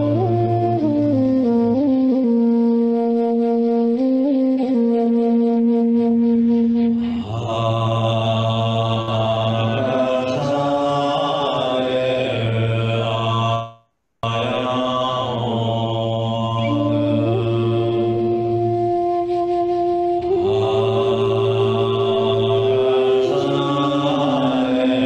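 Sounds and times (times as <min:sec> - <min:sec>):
man chanting: 0:07.0 - 0:18.8, 0:20.2 - 0:25.0.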